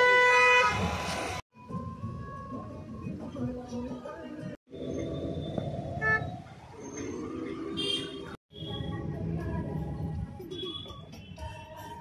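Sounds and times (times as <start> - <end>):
traffic and road noise: 0.0 - 12.0.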